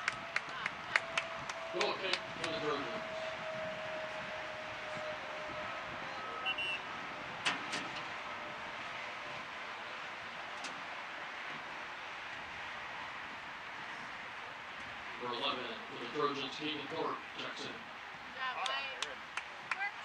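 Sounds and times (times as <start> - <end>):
distant road traffic: 0.0 - 20.0
wind hiss: 0.0 - 20.0.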